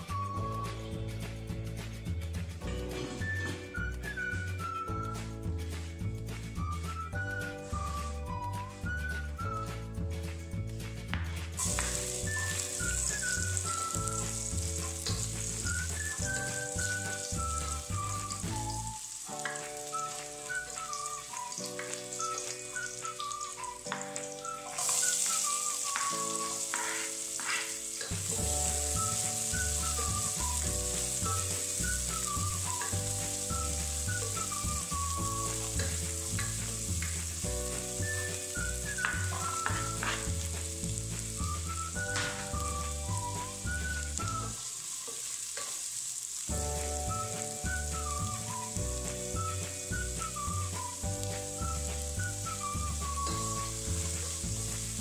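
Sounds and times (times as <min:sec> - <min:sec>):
background music with bass line: 0:00.0 - 0:19.0, 0:28.2 - 0:44.6, 0:46.5 - 0:55.0
garlic and onions sizzling in oil: 0:00.0 - 0:55.0
spatula stirring in pan: 0:19.2 - 0:41.4, 0:44.6 - 0:46.4.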